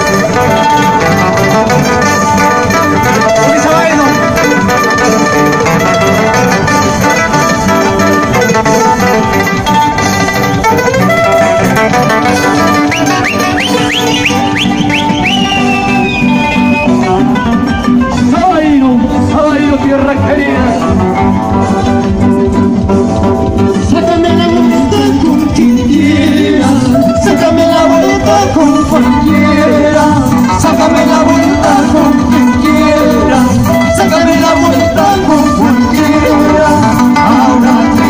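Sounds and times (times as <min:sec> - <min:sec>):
guitars strumming: 0:00.0 - 0:38.0
high-pitched plucked string melody: 0:00.0 - 0:38.0.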